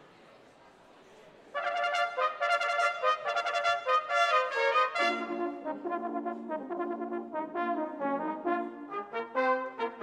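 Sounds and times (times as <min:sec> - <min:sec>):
brass band playing: 0:01.6 - 0:10.0.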